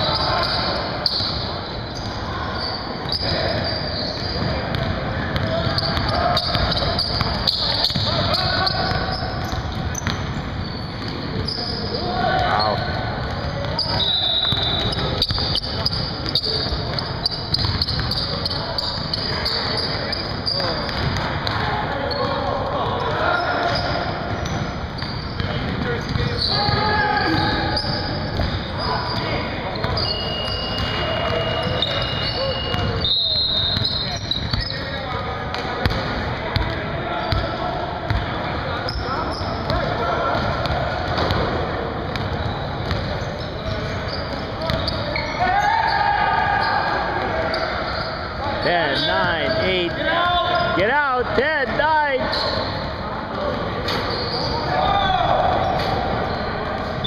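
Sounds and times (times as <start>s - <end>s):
players' indistinct voices and shouts: 0.0s - 57.0s
basketball bouncing on wooden floor: 20.8s - 21.6s.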